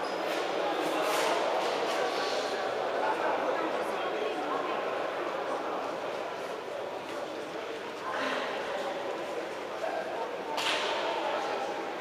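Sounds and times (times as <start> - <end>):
murmur of voices in a hall: 0.0 - 12.0.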